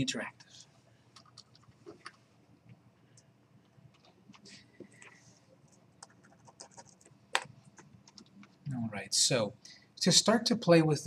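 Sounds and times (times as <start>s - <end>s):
computer keyboard clicks: 1.2s - 2.2s, 6.0s - 8.6s.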